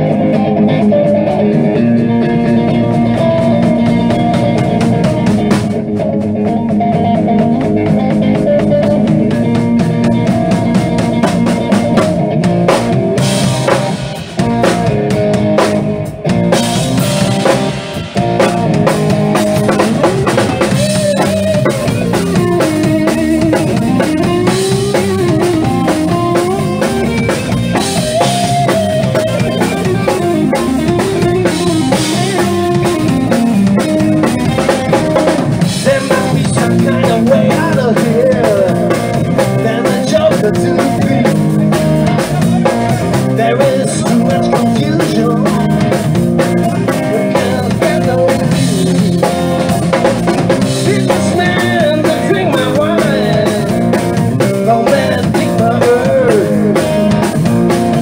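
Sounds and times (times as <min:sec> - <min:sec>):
bending lead guitar line: 0:00.0 - 0:58.0
blues-rock band playing: 0:00.0 - 0:58.0.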